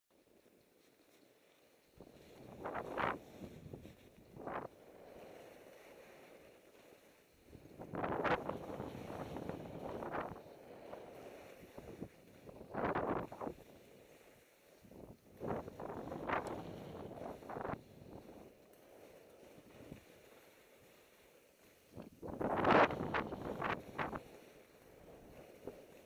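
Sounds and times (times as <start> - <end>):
skis scraping through snow: 0.2 - 26.0
wind on microphone: 2.0 - 26.0.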